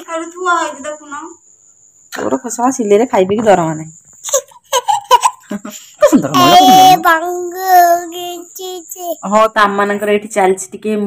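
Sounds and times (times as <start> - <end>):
toddler singing: 6.4 - 9.2.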